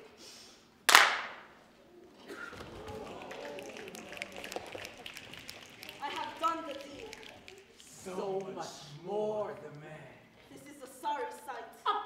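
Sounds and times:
murmuring voices: 1.8 - 9.8.

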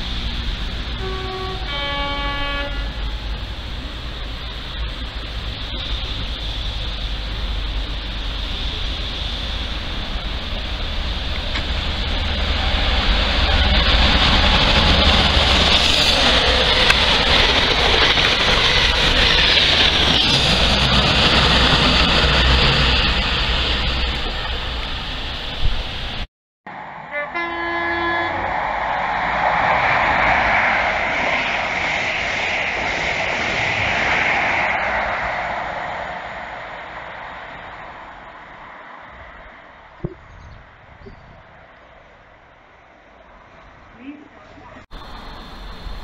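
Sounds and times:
train rushing past with rumble: 0.0 - 46.0
train horn: 0.9 - 3.3, 27.0 - 28.6.

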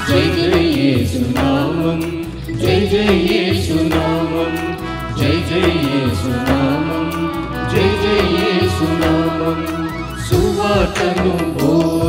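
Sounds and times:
instrumental accompaniment: 0.0 - 12.0
person singing a hymn: 0.0 - 12.0
drum strikes: 10.2 - 12.0.

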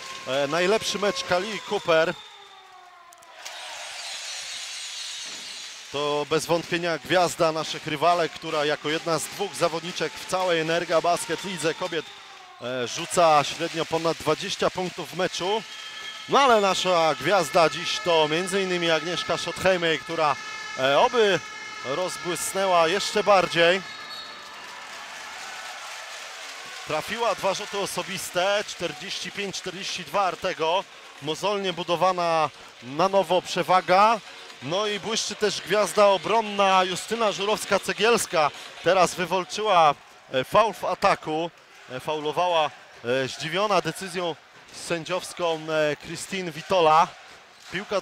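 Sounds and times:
arena crowd applauding and cheering: 0.0 - 48.0.

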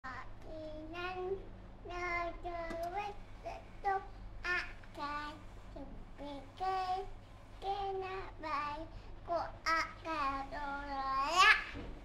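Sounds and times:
toddler singing wordlessly: 0.0 - 11.8.

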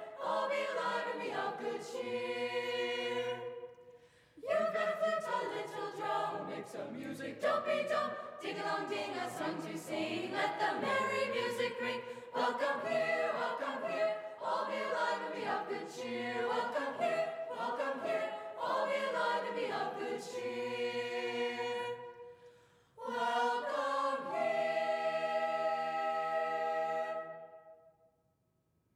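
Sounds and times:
choir singing in harmony: 0.0 - 27.8.

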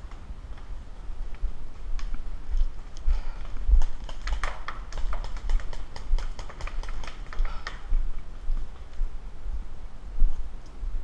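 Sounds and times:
paintball markers firing: 3.7 - 7.8.

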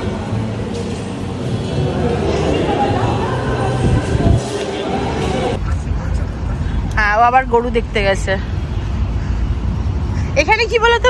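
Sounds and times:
indoor chatter: 0.0 - 7.9
steady low rumble: 1.5 - 10.5.

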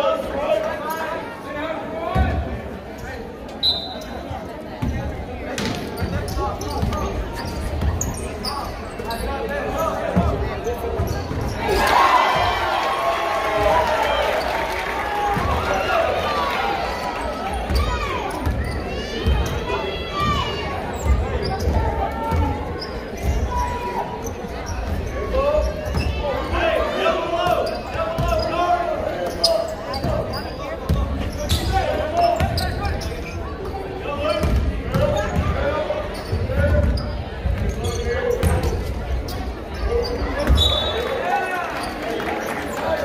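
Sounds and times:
crowd chatter and shouts: 0.0 - 43.0.

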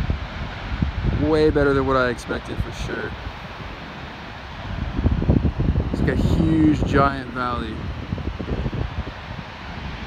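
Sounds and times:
wind blowing across microphone: 0.0 - 10.0.

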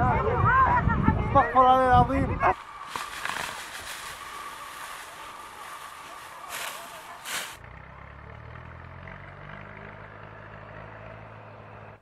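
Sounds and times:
engine running: 2.3 - 12.0.

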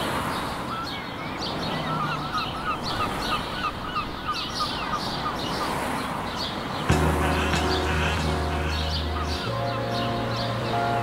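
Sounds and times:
rapid bird chirps: 0.3 - 11.0
background hiss: 6.9 - 11.0.

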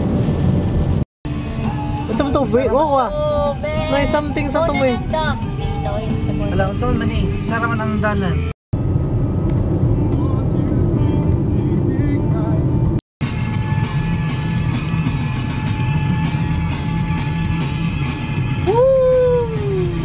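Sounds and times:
car cabin road rumble: 0.0 - 1.0, 1.8 - 20.0
music playing: 1.3 - 8.5, 9.9 - 20.0.

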